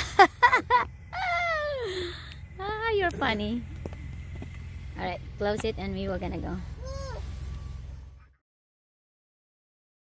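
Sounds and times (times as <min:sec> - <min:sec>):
low rumble in car cabin: 0:00.0 - 0:08.4.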